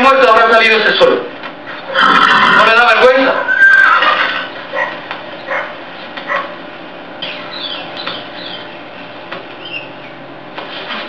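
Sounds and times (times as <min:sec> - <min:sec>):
dog barking: 0:04.7 - 0:06.6
high chirping calls: 0:07.2 - 0:08.9, 0:09.6 - 0:10.2.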